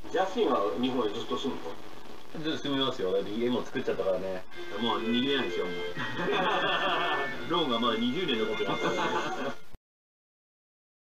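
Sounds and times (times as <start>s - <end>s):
background music: 4.1s - 9.8s
man laughing and talking: 6.0s - 7.5s, 8.5s - 9.6s.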